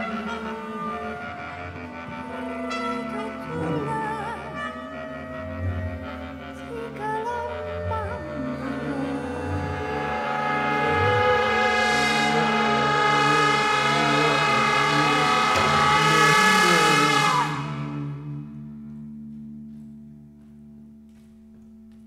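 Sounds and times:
wavering sung pitches: 0:00.0 - 0:20.8
ensemble holding dense chord: 0:00.0 - 0:21.8
low held tone: 0:00.0 - 0:22.0.

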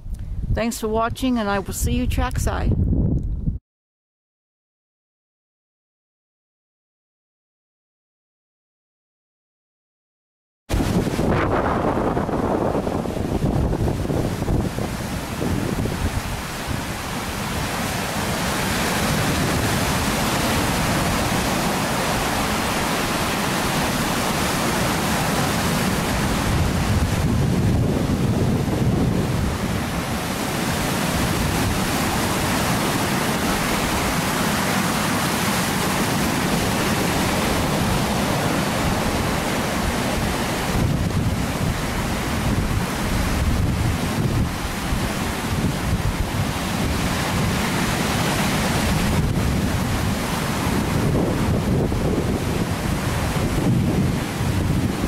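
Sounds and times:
wind buffeting microphone: 0:00.0 - 0:03.6, 0:10.7 - 0:55.0
waves breaking on rocky shore: 0:10.7 - 0:55.0.

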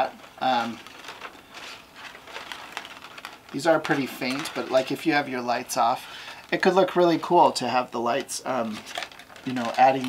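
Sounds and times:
card stock rustling: 0:00.0 - 0:10.0.

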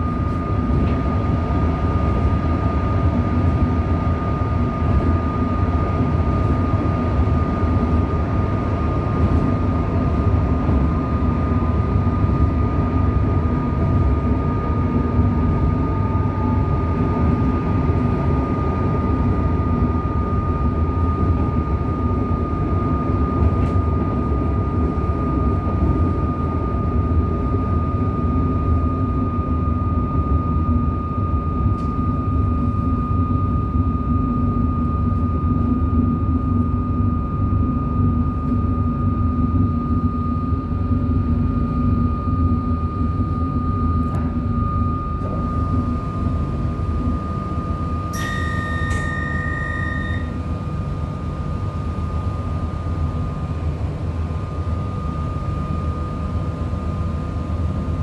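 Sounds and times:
constant high whine: 0:00.0 - 0:58.0.

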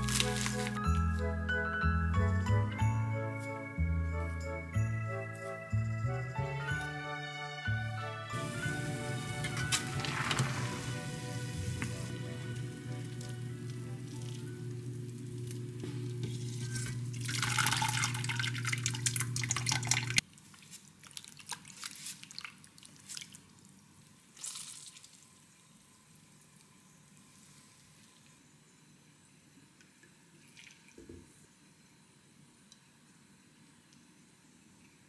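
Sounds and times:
soft background music: 0:00.0 - 0:18.4
water draining and dripping: 0:17.1 - 0:20.2.

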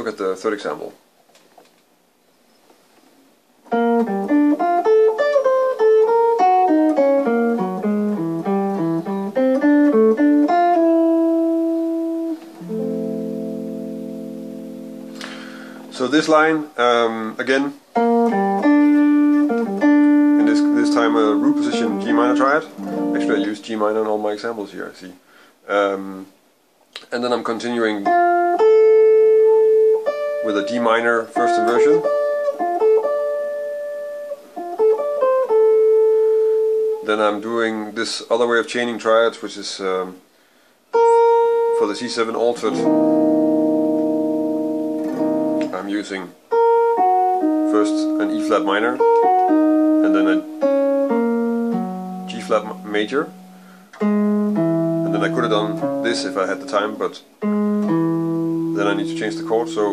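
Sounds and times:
electric jazz guitar playing: 0:03.6 - 0:24.4, 0:27.6 - 0:38.0, 0:40.9 - 0:59.9.

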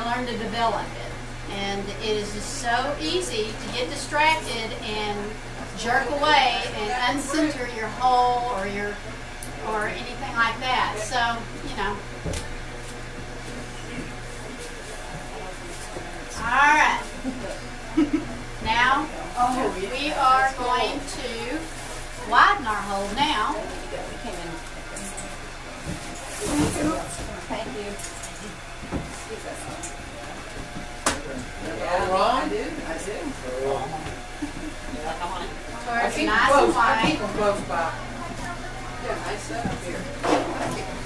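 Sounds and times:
potter's wheel humming: 0:00.0 - 0:41.0.

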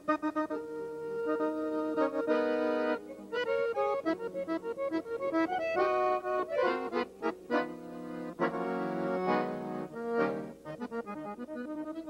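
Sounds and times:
piano accordion playing: 0:00.0 - 0:12.0.

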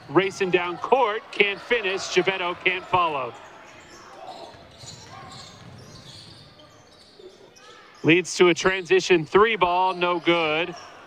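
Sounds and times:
crowd voices echoing: 0:00.0 - 0:11.0
shoes on court: 0:00.2 - 0:07.1.

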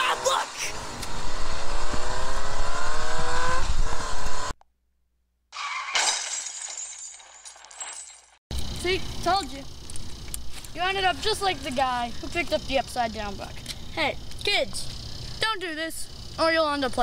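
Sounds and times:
vehicle engine revving: 0:00.6 - 0:04.5.

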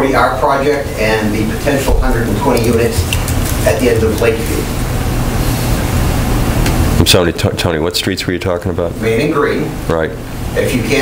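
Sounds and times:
microphone hiss with low hum: 0:00.0 - 0:11.0.

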